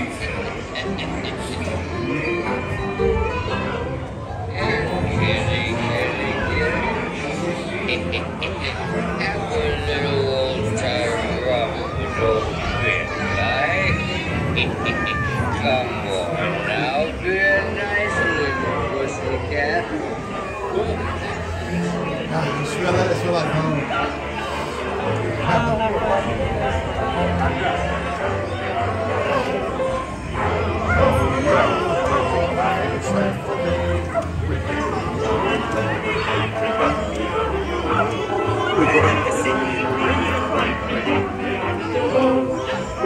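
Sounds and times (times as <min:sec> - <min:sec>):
background music: 0:00.0 - 0:43.0
man's voice: 0:00.0 - 0:43.0.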